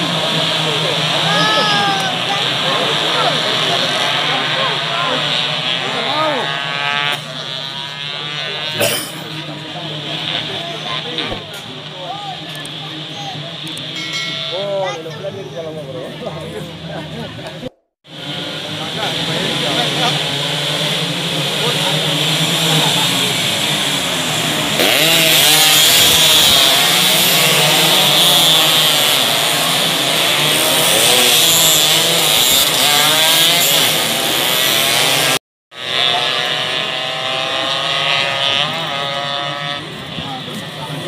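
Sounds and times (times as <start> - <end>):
motorcycles racing at high revs: 0.0 - 41.0.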